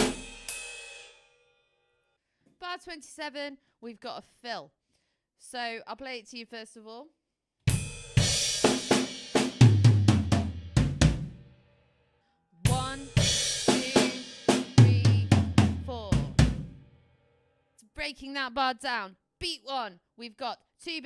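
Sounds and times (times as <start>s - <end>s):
bass drum: 0.0s - 0.5s, 7.7s - 11.5s, 12.7s - 16.9s
crash cymbal: 0.0s - 1.6s.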